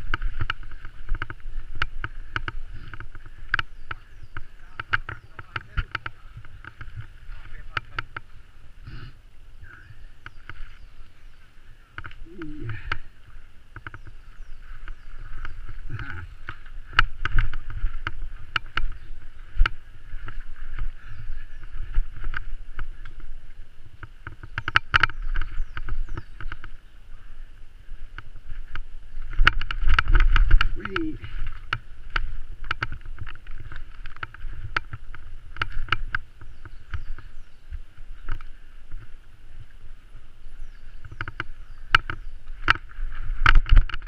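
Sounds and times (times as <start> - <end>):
bike clattering and rattling: 0.0 - 8.7, 9.9 - 44.0
wind rumble on microphone: 0.0 - 44.0.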